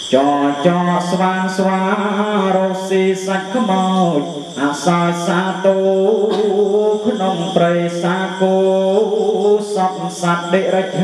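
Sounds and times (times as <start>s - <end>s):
person chanting solo: 0.0s - 11.0s.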